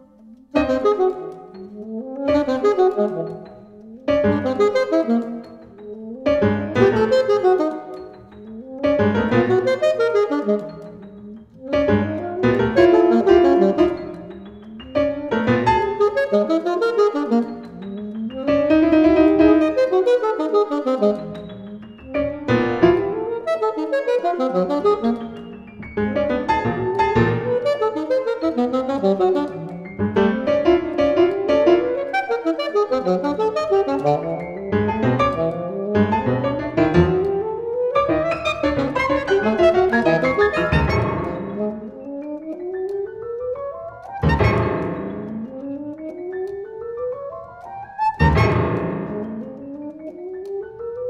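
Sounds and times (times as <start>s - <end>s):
piano chords ringing: 0.0s - 51.0s
saxophone tones: 0.1s - 51.0s.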